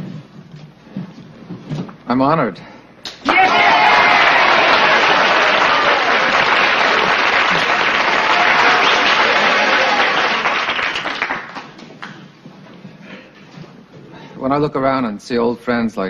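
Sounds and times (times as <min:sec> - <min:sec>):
crowd applauding: 0:03.2 - 0:12.2.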